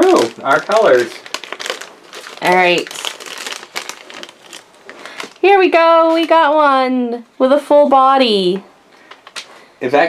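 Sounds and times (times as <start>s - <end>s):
plastic packet crinkling: 0.0s - 6.6s.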